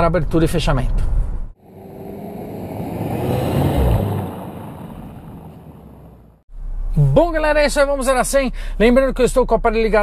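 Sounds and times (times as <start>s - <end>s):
vehicle passing by: 1.6s - 6.4s.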